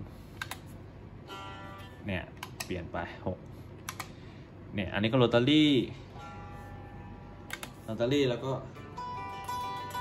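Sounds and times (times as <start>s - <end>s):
sustained guitar tone: 1.2s - 2.2s, 6.1s - 10.0s.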